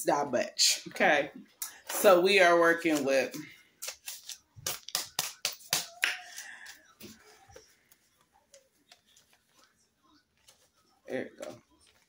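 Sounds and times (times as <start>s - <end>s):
faint paper rustles: 2.8s - 12.0s
paper bills crinkling: 2.8s - 12.0s.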